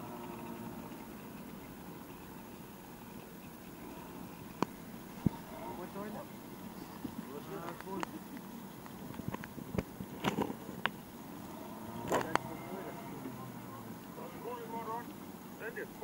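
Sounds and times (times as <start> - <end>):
outboard motor humming: 0.0 - 16.0
voices calling: 0.0 - 16.0.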